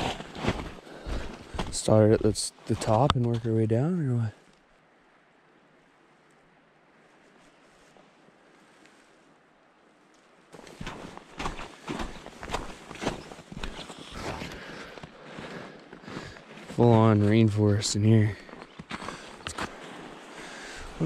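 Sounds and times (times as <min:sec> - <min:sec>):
footsteps on snow: 0:00.0 - 0:03.5, 0:10.5 - 0:21.0
faint steady hiss: 0:00.8 - 0:10.7.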